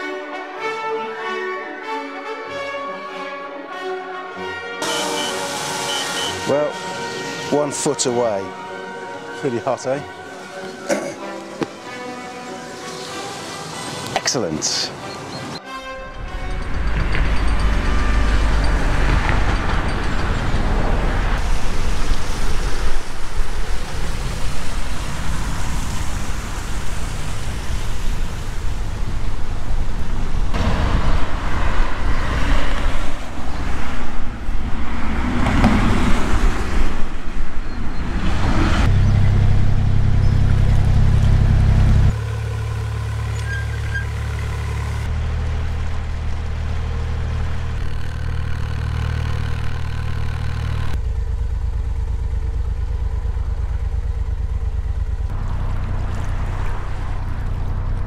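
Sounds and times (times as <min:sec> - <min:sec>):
boat engine running: 0:38.9 - 0:58.0.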